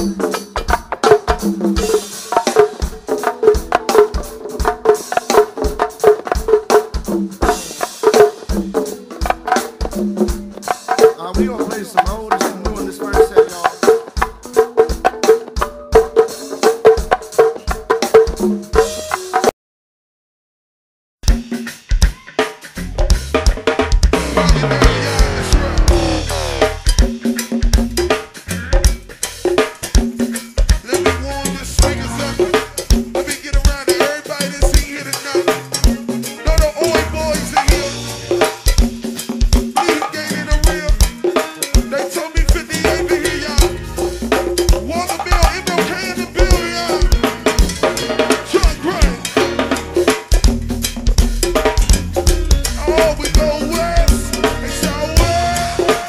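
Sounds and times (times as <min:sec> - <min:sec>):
go-go band music: 0:00.0 - 0:19.5, 0:21.2 - 0:56.0
hand drum hits: 0:00.0 - 0:19.5
downward sliding pitched sound: 0:24.2 - 0:26.9, 0:31.0 - 0:33.2.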